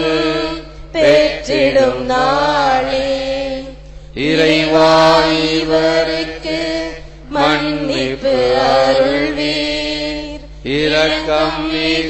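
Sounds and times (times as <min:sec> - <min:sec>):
person singing a devotional hymn: 0:00.0 - 0:12.0
steady low drone: 0:00.0 - 0:12.0.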